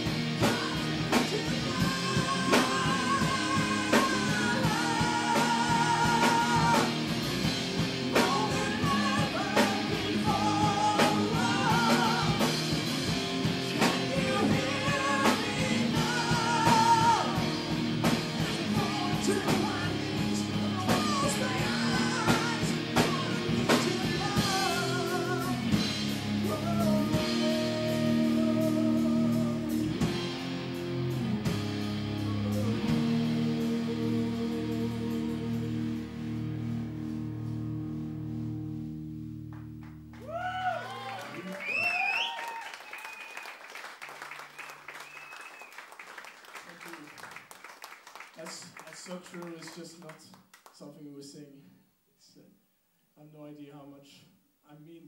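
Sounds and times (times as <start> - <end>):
person singing: 0.0 - 7.0, 8.1 - 12.8, 13.7 - 17.6, 18.4 - 25.8, 26.4 - 29.9, 32.2 - 36.0
distorted electric guitars: 0.0 - 40.1
drum kit: 0.0 - 40.5
bass guitar: 0.0 - 41.8.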